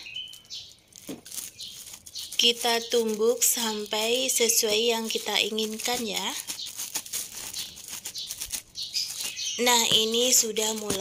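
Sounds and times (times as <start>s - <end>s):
plastic sheets crinkling: 0.0s - 11.0s.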